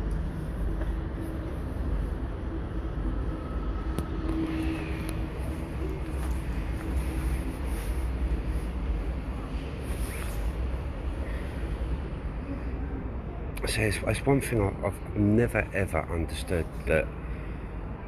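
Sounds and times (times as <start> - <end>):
faint hum: 0.0 - 18.0
low rumble of road traffic: 0.0 - 18.0.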